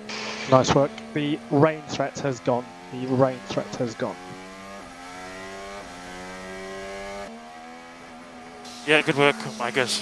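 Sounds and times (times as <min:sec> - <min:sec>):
racing car engine running: 0:00.0 - 0:10.0.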